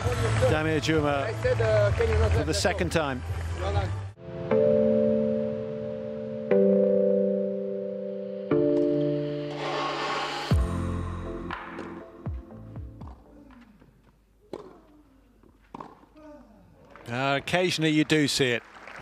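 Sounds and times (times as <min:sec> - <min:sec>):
rising whoosh: 0:09.2 - 0:12.1
tennis ball bouncing on clay: 0:14.4 - 0:16.2.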